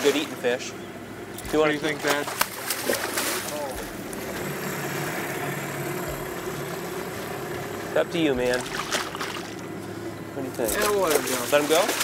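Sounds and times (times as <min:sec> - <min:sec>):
outboard motor idling: 0:00.0 - 0:12.0.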